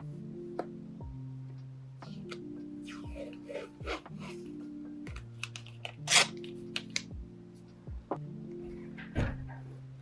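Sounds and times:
soft background music: 0.0 - 10.0
tape ripping from roll: 5.4 - 7.0.

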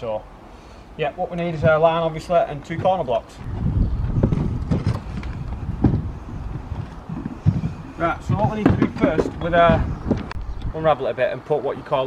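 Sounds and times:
footsteps on hard ground: 1.4 - 10.4.

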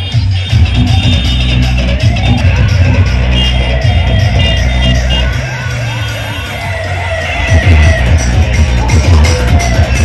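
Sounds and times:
dance track heavy bass: 0.0 - 10.0
siren sweep effect: 2.0 - 8.1.

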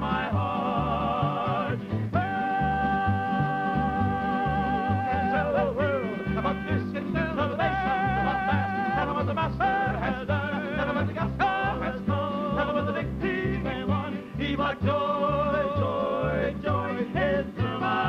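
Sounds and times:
men singing in harmony: 0.0 - 18.0.

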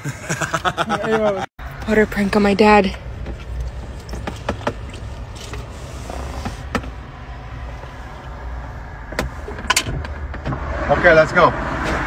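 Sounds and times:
car cabin hum: 1.6 - 10.6.

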